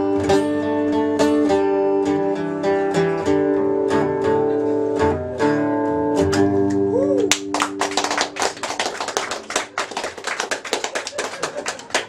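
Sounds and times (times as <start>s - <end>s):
audience clapping: 7.2s - 12.0s.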